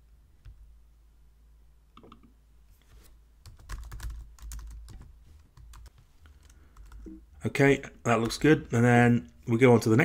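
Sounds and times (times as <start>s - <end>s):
typing on computer keyboard: 3.5s - 7.1s.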